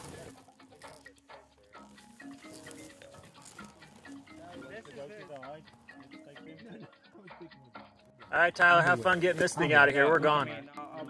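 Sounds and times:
faint indistinct voices: 0:00.0 - 0:11.0
quiet background music: 0:00.0 - 0:11.0.

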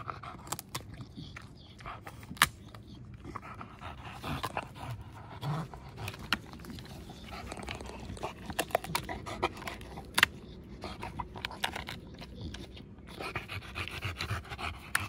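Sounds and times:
dog panting: 0:00.0 - 0:15.0.

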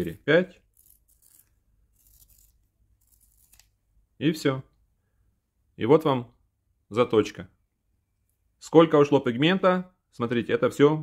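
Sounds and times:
pencil sharpener scraping: 0:00.0 - 0:03.7.

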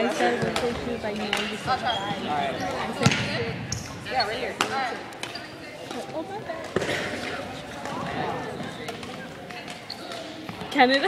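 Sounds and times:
racket hitting shuttlecock: 0:08.8 - 0:10.7.

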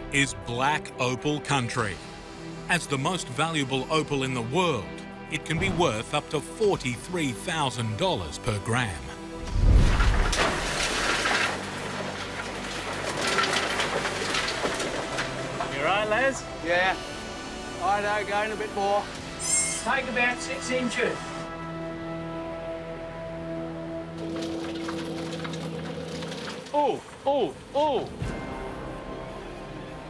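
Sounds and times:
digger scraping and grinding rock: 0:09.4 - 0:16.8, 0:24.2 - 0:26.8.

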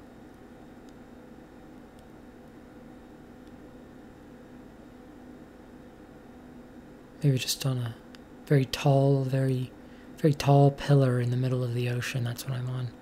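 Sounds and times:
low hum and hiss: 0:00.0 - 0:13.0.

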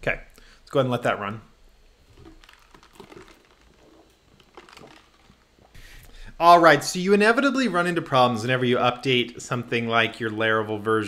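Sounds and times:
handling sounds: 0:02.1 - 0:06.0.

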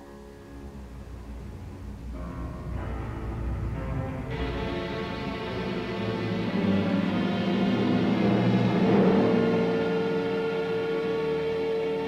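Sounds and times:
orchestra playing sustained chords: 0:00.0 - 0:12.0.

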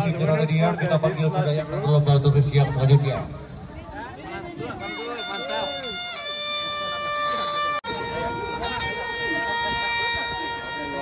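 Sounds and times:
crowd voices: 0:00.0 - 0:11.0
trumpet playing long held notes: 0:04.6 - 0:11.0.

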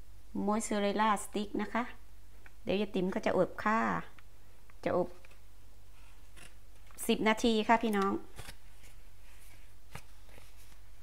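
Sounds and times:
cardboard and plastic rustling: 0:08.3 - 0:11.0.

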